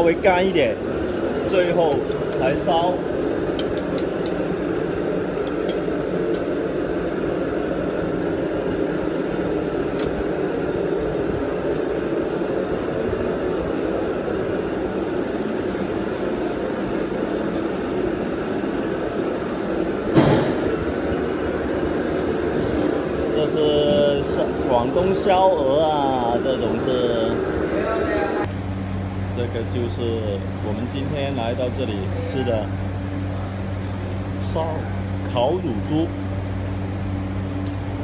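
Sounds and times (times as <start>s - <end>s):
charcoal fire burning: 0.0s - 38.0s
sharp knock: 20.2s - 20.6s.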